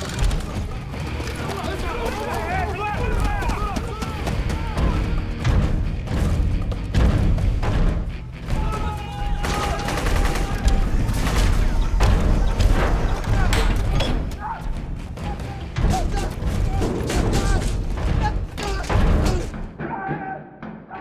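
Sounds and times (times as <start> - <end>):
film score music: 0.0 - 21.0
men shouting: 0.7 - 5.3, 8.4 - 21.0.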